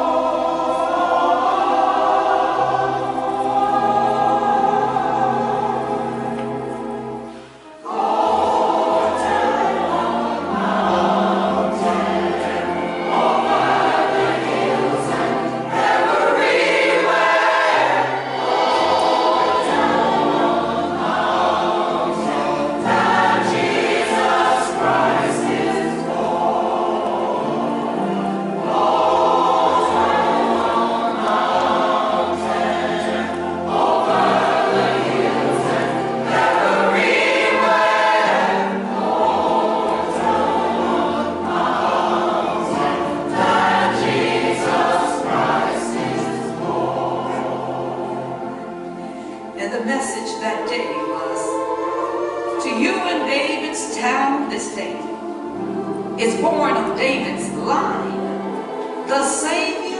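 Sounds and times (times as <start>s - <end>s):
church choir singing: 0.0s - 59.9s.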